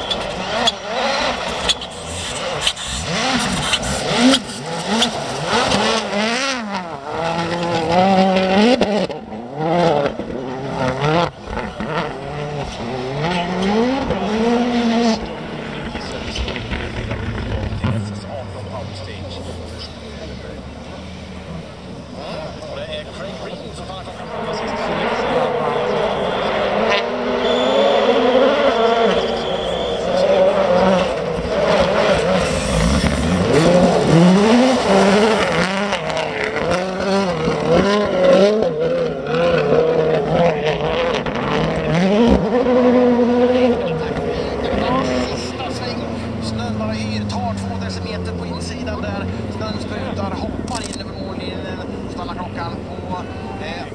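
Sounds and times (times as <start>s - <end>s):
rally car engine revving: 0.0s - 53.9s.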